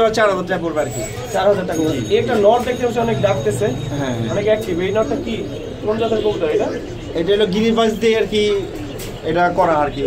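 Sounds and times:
pigeons cooing: 0.0 - 10.0
voices talking: 0.0 - 10.0.

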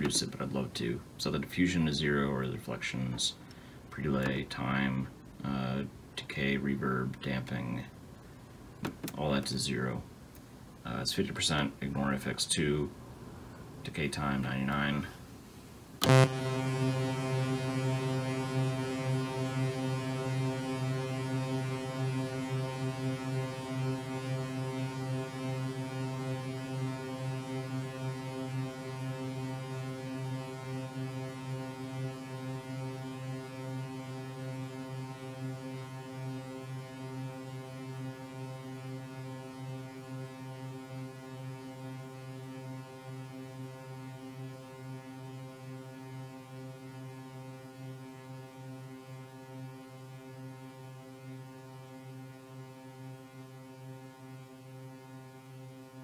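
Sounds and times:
synthesizer low note ringing: 16.0 - 56.0.

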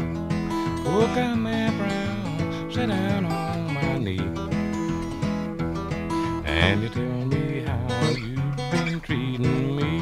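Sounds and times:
acoustic guitar blues: 0.0 - 10.0.

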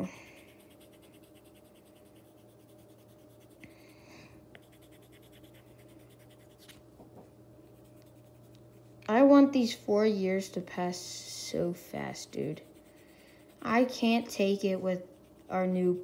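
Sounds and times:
steady low hum: 0.0 - 16.0
pencil scratching on paper: 0.3 - 3.6, 4.6 - 6.8, 7.8 - 8.5, 11.8 - 16.0.

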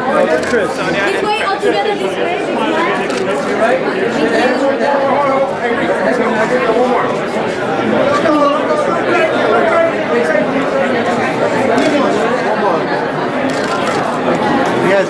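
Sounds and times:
many voices chattering: 0.0 - 15.0.

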